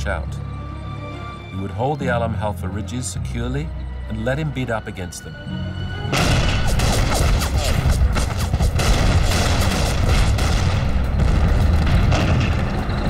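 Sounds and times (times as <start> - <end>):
gunfire: 6.1 - 13.0
shell explosions: 6.1 - 13.0.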